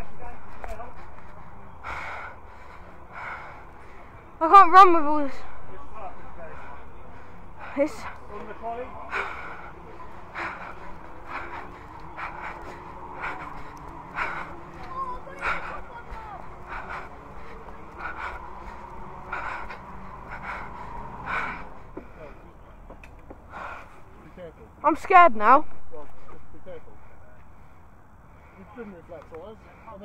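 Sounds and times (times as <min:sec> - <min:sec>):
faint voices: 0:00.0 - 0:30.0
person breathing close to microphone: 0:09.1 - 0:22.4.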